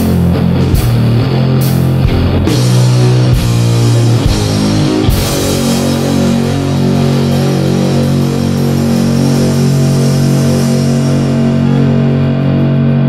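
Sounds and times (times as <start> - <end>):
cymbal wash: 0.0 - 13.0
drums: 0.0 - 13.0
heavy metal chords: 0.0 - 13.0
cymbal crash: 0.7 - 13.0.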